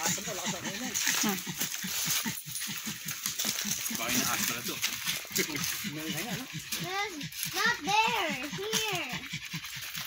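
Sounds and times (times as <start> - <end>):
dog panting hard: 0.0 - 10.0.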